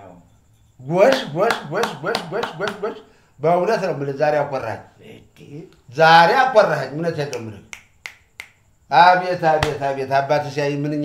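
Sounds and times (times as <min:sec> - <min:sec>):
man talking: 0:00.8 - 0:07.7, 0:08.9 - 0:11.0.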